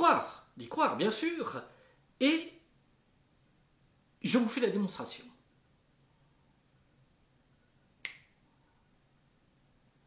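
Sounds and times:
finger snap: 8.0 - 8.4.

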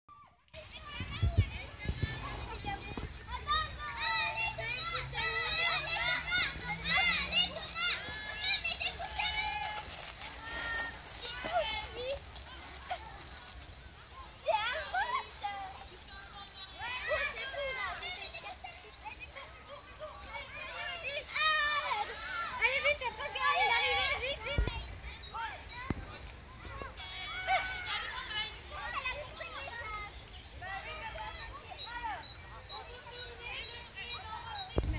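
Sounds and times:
children shouting: 0.3 - 34.9.

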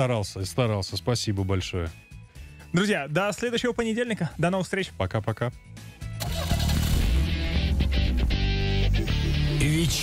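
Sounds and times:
car engine starting and running: 6.1 - 8.2
radio jingle music: 6.2 - 10.0.

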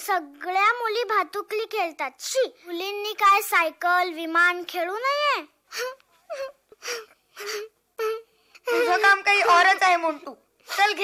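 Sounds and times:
child whimpering: 5.7 - 9.1.

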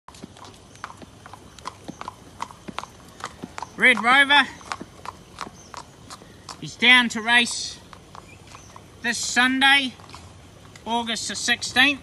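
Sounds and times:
hooves clip-clopping on pavement: 0.1 - 12.0.

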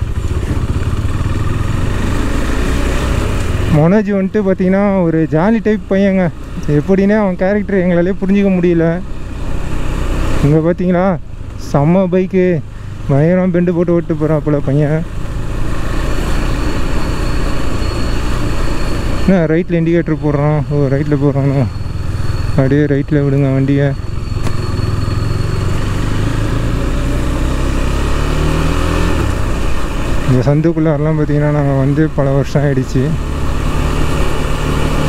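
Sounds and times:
motorcycle engine running: 0.0 - 35.0
wind and road noise: 0.0 - 35.0.

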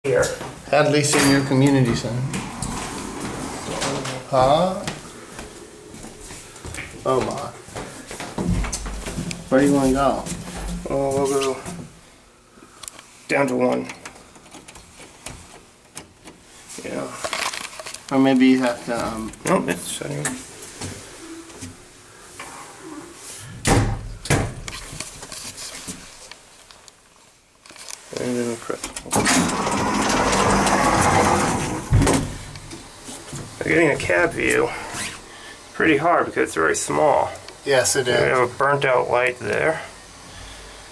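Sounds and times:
elevator hum: 1.4 - 6.5, 29.0 - 33.0
elevator door rattling closed: 29.1 - 32.4.

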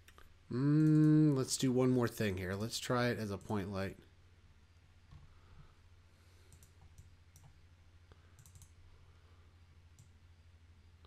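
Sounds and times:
computer mouse clicks: 0.0 - 1.2, 6.4 - 8.8, 9.9 - 10.2
low steady hum: 0.0 - 11.0.

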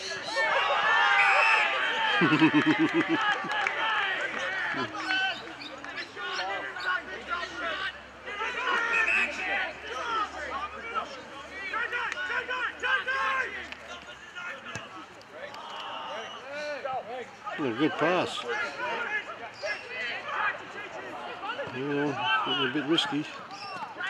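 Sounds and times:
people shouting and calling: 0.0 - 5.4, 6.0 - 14.9, 17.5 - 24.0.

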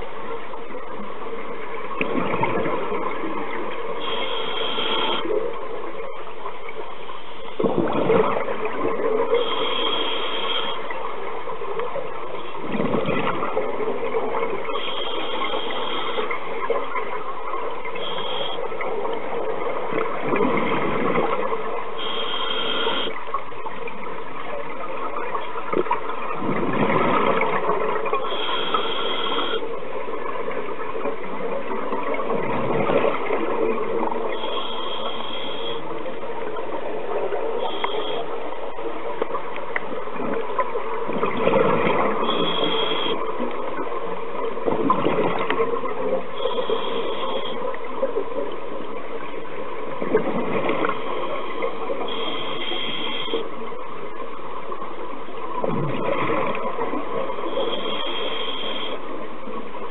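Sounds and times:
exhaled bubbles surging: 1.7 - 6.6, 7.5 - 9.8, 10.6 - 53.5, 54.7 - 59.9
scuba regulator breathing underwater: 4.0 - 5.4, 9.2 - 11.0, 14.6 - 16.4, 18.0 - 18.8, 22.0 - 23.2, 28.2 - 29.7, 34.2 - 36.0, 37.5 - 38.6, 42.2 - 43.5, 46.3 - 47.8, 50.8 - 53.6, 57.3 - 59.2
high regulator whistle: 22.0 - 23.2, 42.2 - 43.2.

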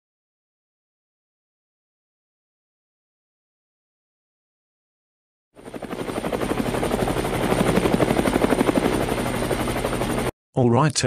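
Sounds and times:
helicopter high whine: 5.6 - 10.3
helicopter rotor chop: 5.6 - 10.3.

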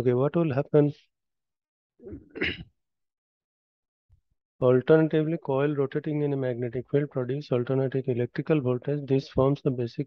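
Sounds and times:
man clearing throat: 2.1 - 2.7.

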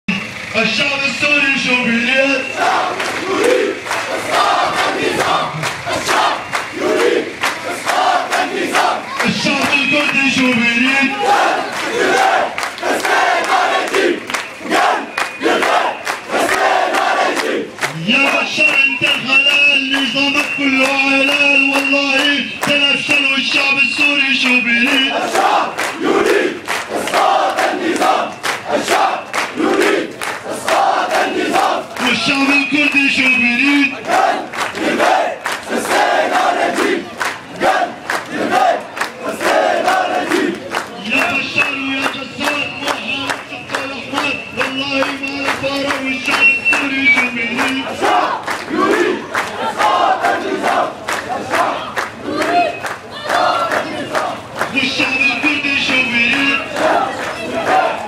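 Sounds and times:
crowd chanting: 1.8 - 58.0
hand clapping: 3.0 - 6.7, 7.4 - 10.5, 11.7 - 57.8.

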